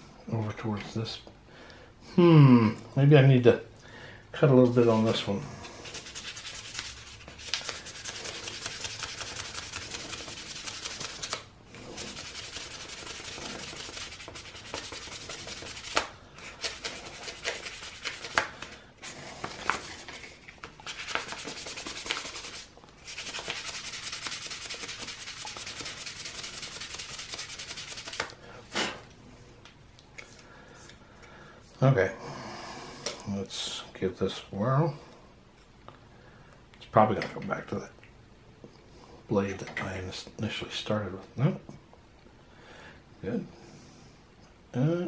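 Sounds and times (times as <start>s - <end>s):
hand sanding a propeller blade: 4.5s - 28.3s.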